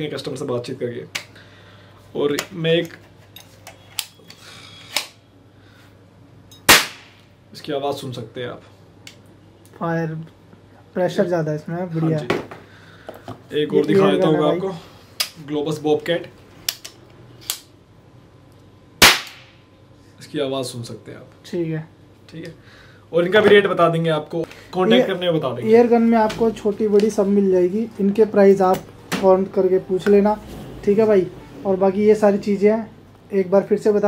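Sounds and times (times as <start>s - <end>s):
air pistol crack: 6.6s - 7.3s, 19.0s - 19.6s.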